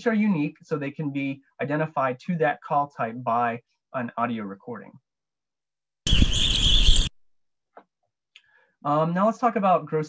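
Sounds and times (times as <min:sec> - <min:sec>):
recorded bird calls: 0:06.1 - 0:07.1.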